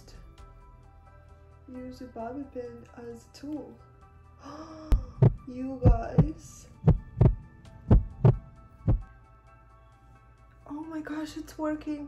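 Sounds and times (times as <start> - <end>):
heartbeat-like thumps: 4.9 - 9.1.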